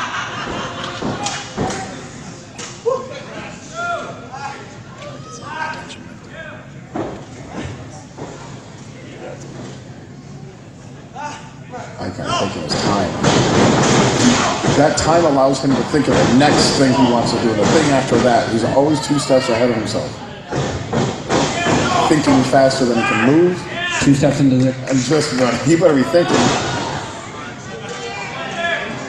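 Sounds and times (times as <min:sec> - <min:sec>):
thuds on wrestling ring canvas: 0:13.2 - 0:15.1
thuds on wrestling ring: 0:13.2 - 0:18.3, 0:20.5 - 0:22.5
commentator's voice: 0:14.8 - 0:20.2, 0:21.8 - 0:26.5
crowd shout: 0:21.5 - 0:24.1, 0:25.8 - 0:29.0.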